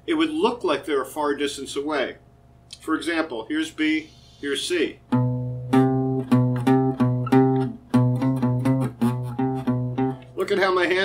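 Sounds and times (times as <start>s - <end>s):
acoustic guitar plucked notes: 5.0s - 10.4s.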